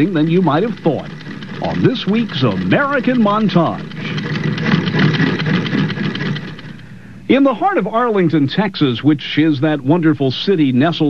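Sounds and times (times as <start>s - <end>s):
sewing machine clattering: 0.0s - 7.0s.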